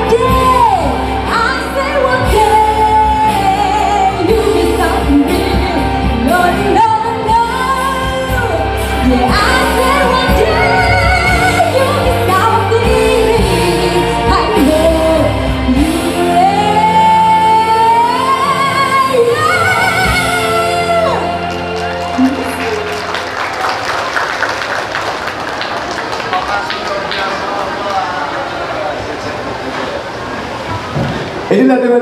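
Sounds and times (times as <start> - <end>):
girl singing into microphone: 0.0 - 21.4
pop backing track: 0.0 - 23.0.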